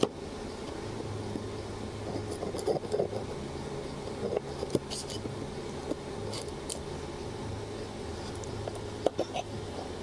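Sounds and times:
steady low hum: 0:00.0 - 0:10.0
small tool scraping: 0:02.0 - 0:05.3, 0:06.2 - 0:06.8.

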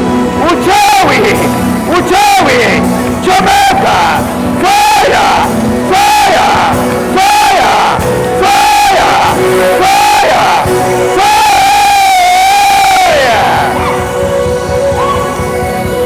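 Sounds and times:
keyboard music: 0:00.0 - 0:16.0.

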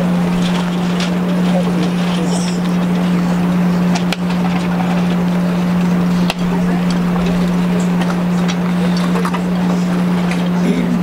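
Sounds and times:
loud steady low hum: 0:00.0 - 0:11.0
outdoor background noise: 0:00.0 - 0:11.0.

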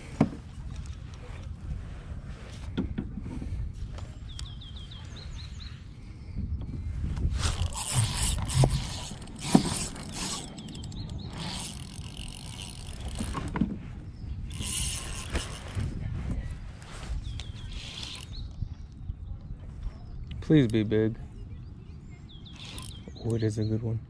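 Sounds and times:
fishing reel cranking: 0:07.4 - 0:13.6, 0:14.4 - 0:15.8, 0:17.4 - 0:18.6, 0:22.5 - 0:23.4.

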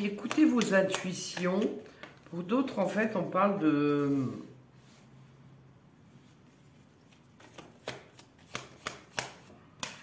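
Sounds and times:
cards being shuffled: 0:00.0 - 0:03.2, 0:06.7 - 0:10.0.

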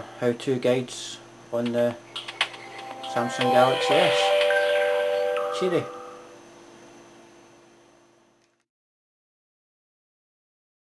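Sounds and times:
faint steady hum: 0:00.0 - 0:08.7.

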